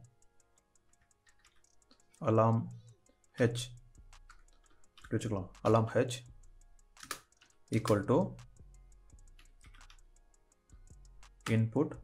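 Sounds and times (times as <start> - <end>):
keyboard key clicks: 7.0 - 8.5.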